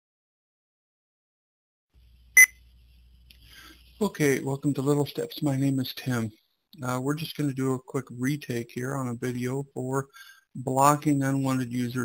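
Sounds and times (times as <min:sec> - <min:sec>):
high electronic beep: 0:02.4 - 0:02.6.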